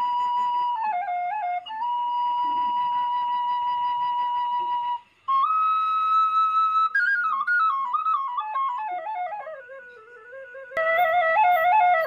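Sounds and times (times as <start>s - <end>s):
flute-like long held note: 0.0s - 12.0s.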